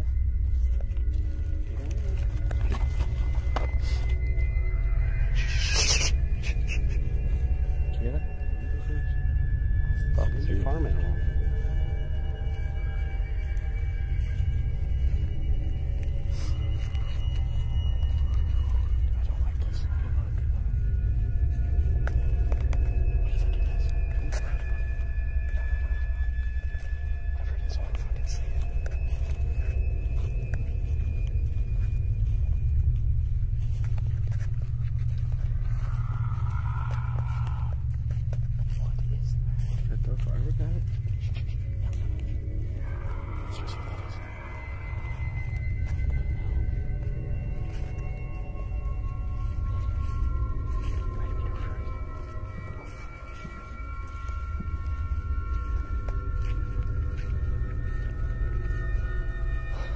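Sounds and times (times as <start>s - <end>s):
eerie droning music: 0.0s - 59.9s
low rumble: 0.0s - 59.9s
faint indistinct voices: 16.3s - 31.1s, 35.6s - 57.4s.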